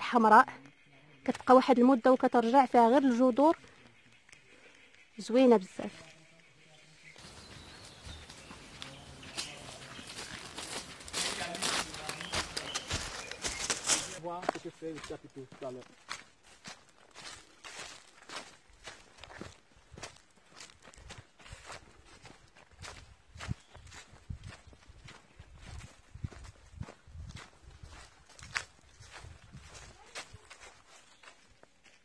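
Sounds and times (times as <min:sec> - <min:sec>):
footsteps crunching dry leaves: 0:07.0 - 0:32.0.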